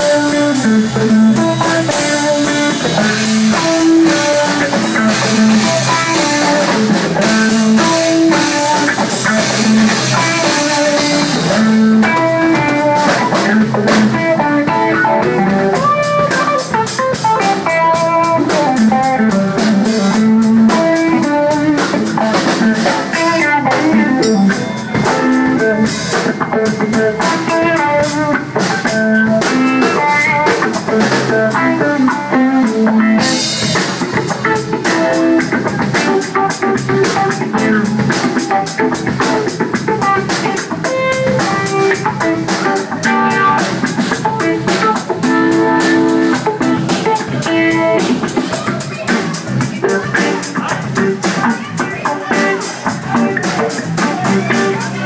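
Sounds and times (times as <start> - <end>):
bass guitar: 0.0 - 55.0
drum kit beat: 0.0 - 55.0
electric guitar riffs: 0.0 - 55.0.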